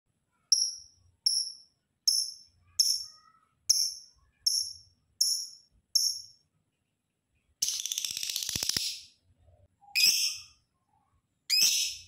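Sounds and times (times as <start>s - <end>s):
bird chirping: 0.3s - 12.0s.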